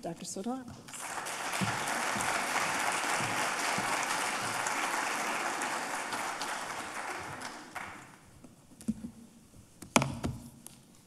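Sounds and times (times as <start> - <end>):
audience applauding: 0.9 - 8.4.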